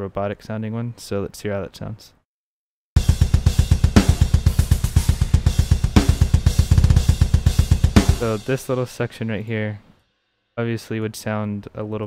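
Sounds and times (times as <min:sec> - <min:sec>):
fast kick drum pattern: 0:03.0 - 0:08.8
heavy drum accent hits: 0:03.0 - 0:09.1
hi-hat and cymbals: 0:03.0 - 0:09.4.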